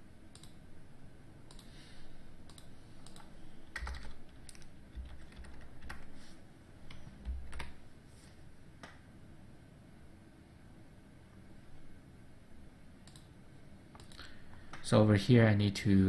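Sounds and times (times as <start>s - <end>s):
computer keyboard typing: 2.5s - 6.2s, 6.9s - 7.8s.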